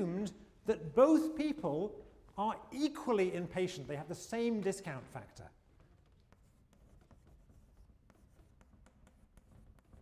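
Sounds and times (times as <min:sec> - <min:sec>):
chalk writing on a blackboard: 0:05.6 - 0:10.0.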